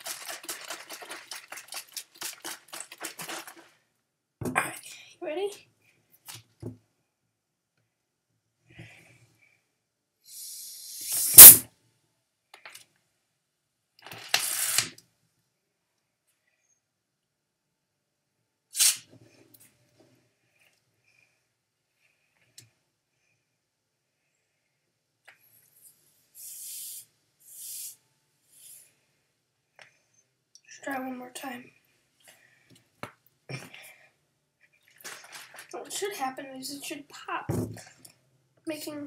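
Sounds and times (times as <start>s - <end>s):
air hissing from plastic bottle: 10.2s - 11.7s, 18.7s - 19.1s, 26.4s - 28.9s.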